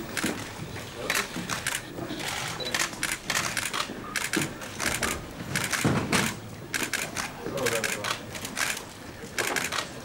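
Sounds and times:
camera shutters clicking: 1.1 - 8.8, 9.4 - 9.9.

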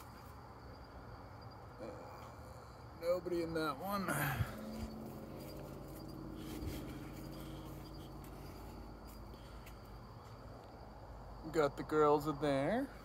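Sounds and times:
low hum: 0.0 - 11.4.

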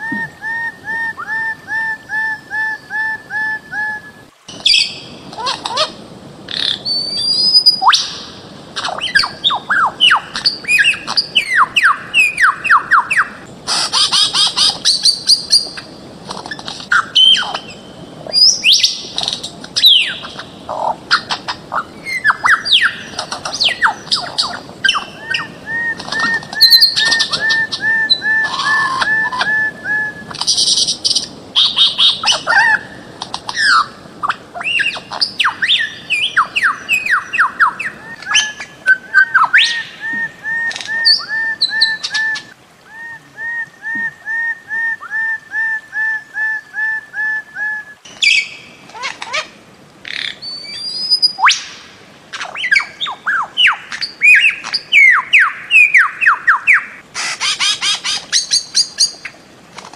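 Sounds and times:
bird chorus whistles and squawks: 16.4 - 45.3, 47.6 - 59.2.

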